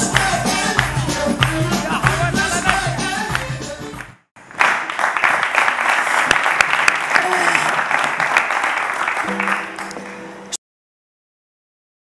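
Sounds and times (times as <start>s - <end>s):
music: 0.0s - 4.2s, 9.2s - 10.6s
studio audience applauding: 0.0s - 10.4s.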